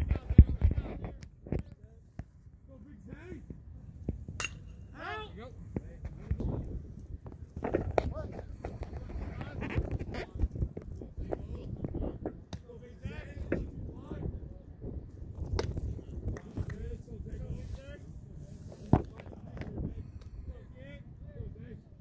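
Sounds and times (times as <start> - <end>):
steady outdoor hum: 0.0 - 22.0
voices calling and chattering: 0.0 - 22.0.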